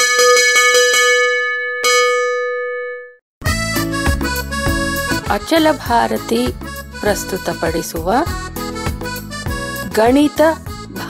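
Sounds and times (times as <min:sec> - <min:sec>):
bell struck rapidly: 0:00.0 - 0:03.1.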